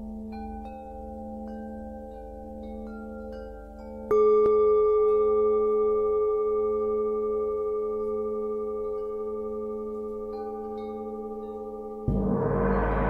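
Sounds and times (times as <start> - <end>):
metal gong ringing: 12.1 - 13.0.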